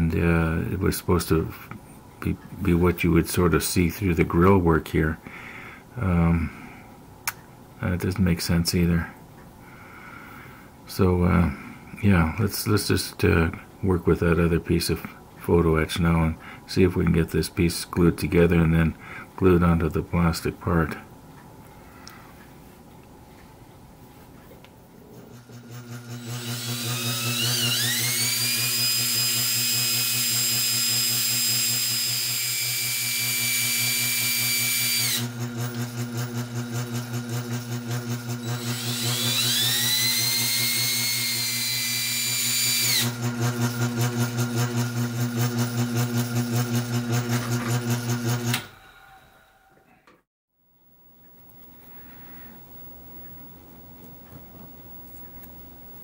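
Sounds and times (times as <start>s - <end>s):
sharpening machine motor humming: 25.2s - 49.2s
high whine of tool on wheel: 25.3s - 49.5s.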